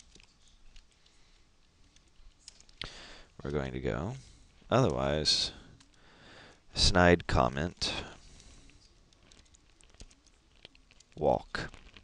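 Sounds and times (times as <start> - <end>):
faint keyboard keystrokes: 0.0 - 3.7, 8.4 - 12.0.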